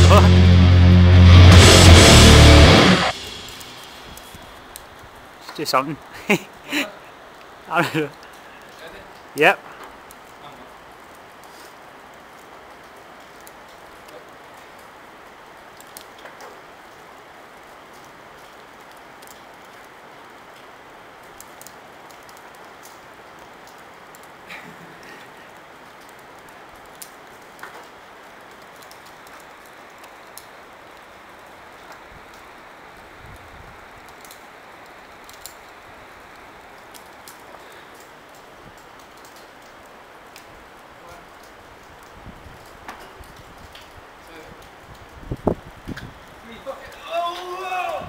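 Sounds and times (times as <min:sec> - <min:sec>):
rain hissing: 0:00.0 - 0:48.0
light ticks: 0:15.8 - 0:16.6, 0:17.9 - 0:19.8, 0:20.5 - 0:23.0, 0:25.9 - 0:27.9, 0:35.2 - 0:35.6, 0:36.3 - 0:40.5.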